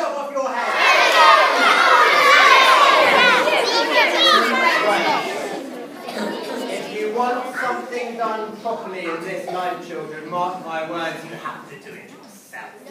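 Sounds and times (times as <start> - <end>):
children calling out and shrieking: 0.6 - 6.9.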